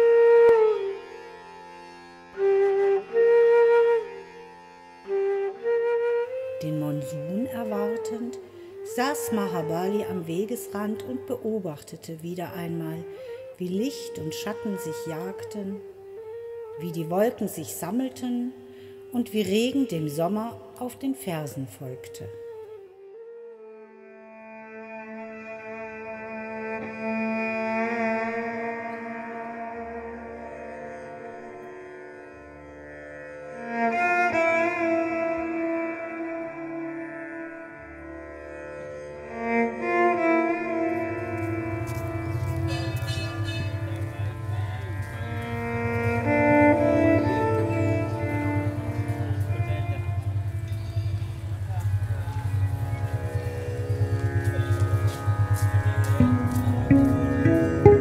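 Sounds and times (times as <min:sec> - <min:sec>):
violin playing slow melody: 0:00.0 - 0:58.0
low pulsing drone: 0:40.1 - 0:58.0.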